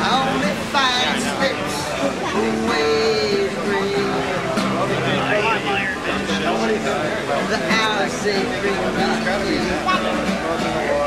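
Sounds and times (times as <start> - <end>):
acoustic guitar strumming: 0.0 - 11.0
man singing or talking: 0.0 - 11.0.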